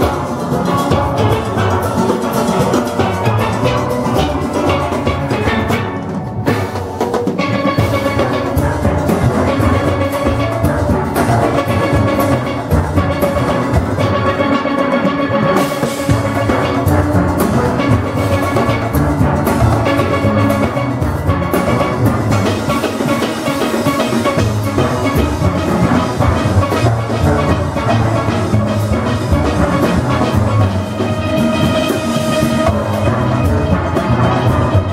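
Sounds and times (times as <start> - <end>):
drum kit rhythm: 0.0 - 34.9
percussion: 0.0 - 34.9
steel pan ensemble playing: 0.0 - 34.9.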